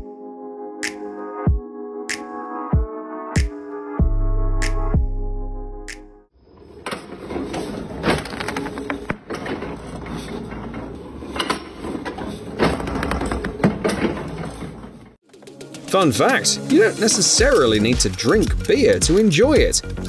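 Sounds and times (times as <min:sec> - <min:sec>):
busy workshop background noise: 0:06.4 - 0:19.9.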